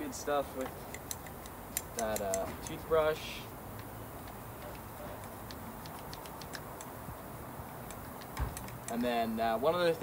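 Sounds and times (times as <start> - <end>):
light clicks and ticks: 0.5 - 3.0, 3.7 - 7.0, 7.6 - 9.3.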